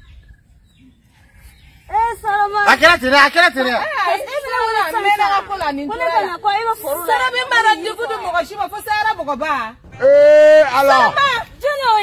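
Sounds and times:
faint bird chirps: 0:00.0 - 0:02.0.

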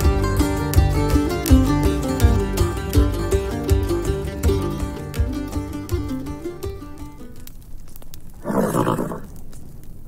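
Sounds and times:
plucked string music: 0:00.0 - 0:08.1
horse whinny: 0:08.4 - 0:09.3.

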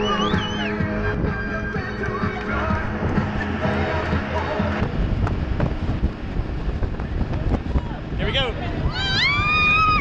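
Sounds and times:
music: 0:00.0 - 0:05.1
speedboat running fast: 0:00.0 - 0:10.0
wind on microphone: 0:00.0 - 0:10.0.

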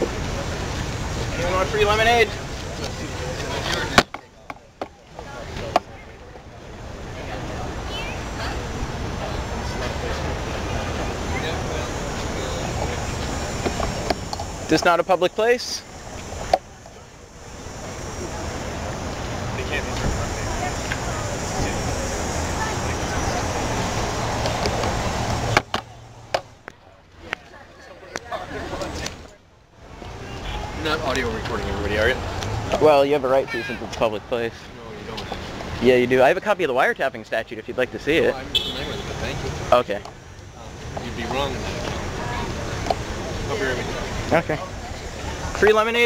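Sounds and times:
outdoor street noise: 0:00.0 - 0:46.0.

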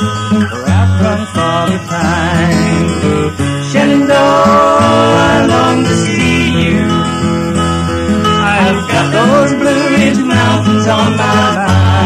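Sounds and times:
country song with acoustic guitar: 0:00.0 - 0:12.0
wavering melody line: 0:00.4 - 0:11.7.

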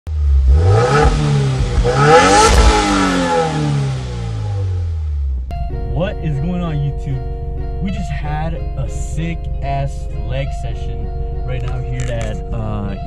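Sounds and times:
car engine accelerating: 0:00.1 - 0:13.0
guitar music: 0:05.5 - 0:13.0.

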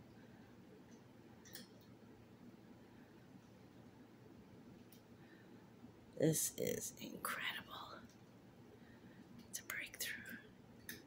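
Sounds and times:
person whispering: 0:06.3 - 0:08.1, 0:09.5 - 0:10.5.

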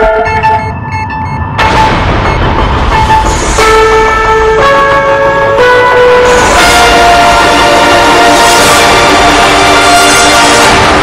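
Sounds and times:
synthesized theme music chords: 0:00.0 - 0:11.0.

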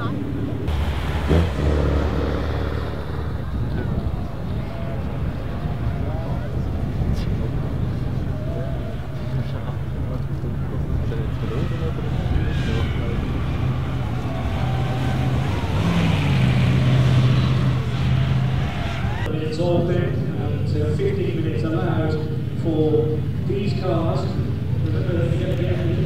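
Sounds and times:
car engine revving: 0:00.0 - 0:19.3.

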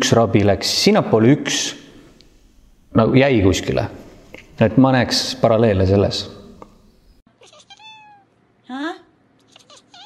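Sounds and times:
kitten meowing: 0:07.4 - 0:08.3, 0:09.5 - 0:10.0.

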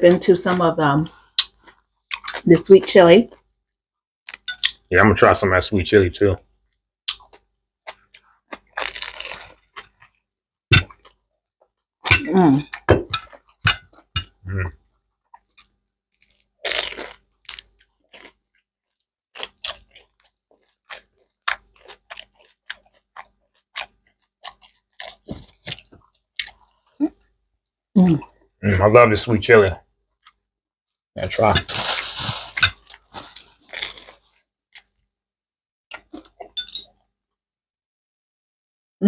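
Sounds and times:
crunching and chewing egg rolls: 0:01.1 - 0:03.6, 0:04.3 - 0:04.9, 0:06.4 - 0:27.4, 0:29.8 - 0:30.5, 0:31.3 - 0:35.1, 0:35.9 - 0:36.6.

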